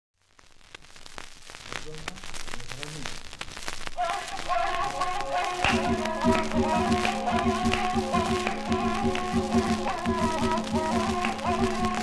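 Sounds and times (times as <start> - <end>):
light hiss: 0.2 - 12.0
vinyl crackles and pops: 0.2 - 12.0.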